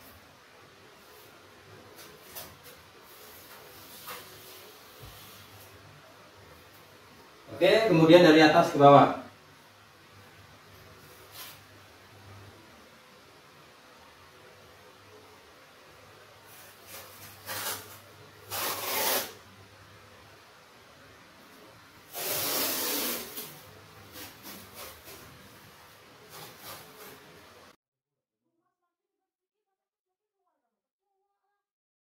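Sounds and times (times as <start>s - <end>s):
masking tape pulled off roll: 16.5s - 19.4s, 22.1s - 25.3s, 26.3s - 27.2s
light rubbing and scratches: 22.2s - 27.5s.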